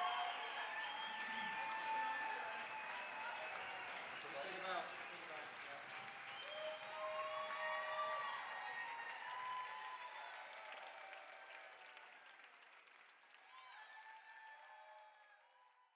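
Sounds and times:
drawn-out cheers: 0.0s - 5.2s, 5.9s - 12.3s, 13.4s - 15.5s
audience applause: 0.0s - 15.5s.

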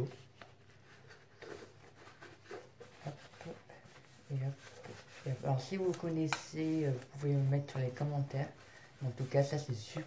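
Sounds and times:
tissue rustling on plastic: 0.0s - 10.0s.

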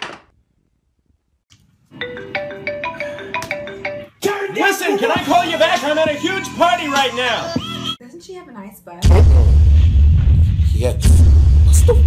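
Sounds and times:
marimba phone ringtone: 2.0s - 4.2s.

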